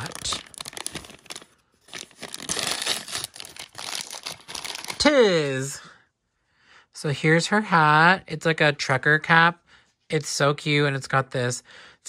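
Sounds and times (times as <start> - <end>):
paper packet crinkling: 0.0 - 5.1.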